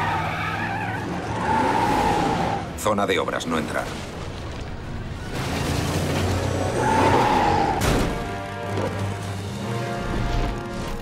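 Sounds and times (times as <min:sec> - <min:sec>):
cartoon tires squealing: 0:00.0 - 0:02.6, 0:06.7 - 0:07.8.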